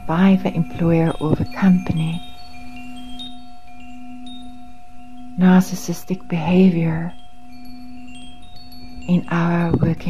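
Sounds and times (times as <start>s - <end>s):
soft high chime pings: 0.5s - 10.0s.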